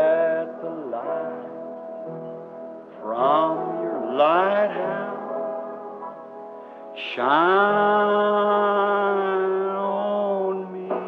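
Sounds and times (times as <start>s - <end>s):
man singing wordless phrases: 0.0s - 1.5s, 3.0s - 5.4s, 7.0s - 11.0s
sustained worship music chord: 0.0s - 10.6s.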